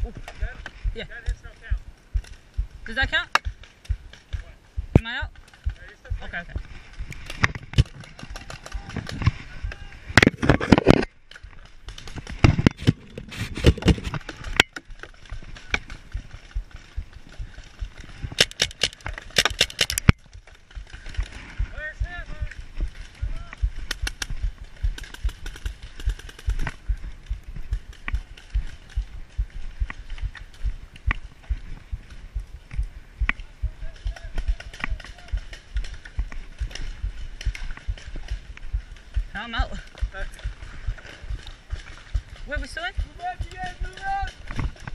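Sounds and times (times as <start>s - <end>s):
footsteps: 0.0s - 44.9s.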